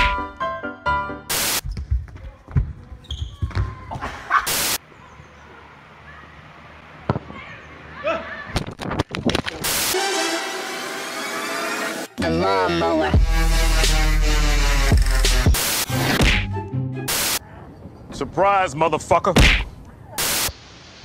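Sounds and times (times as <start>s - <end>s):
music: 0.0s - 1.3s, 9.7s - 17.4s.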